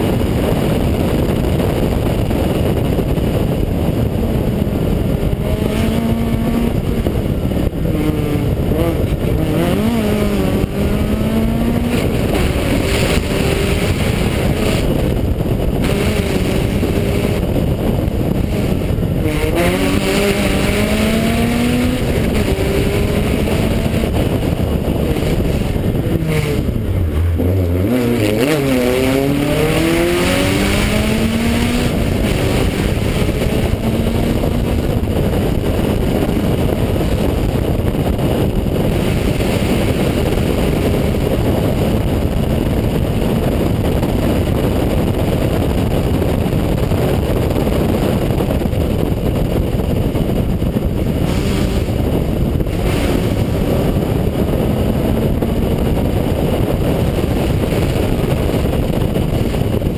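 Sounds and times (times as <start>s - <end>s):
rally car engine revving hard: 0.0s - 48.8s, 49.6s - 59.9s
road noise: 0.0s - 59.9s
wind noise: 0.0s - 59.9s.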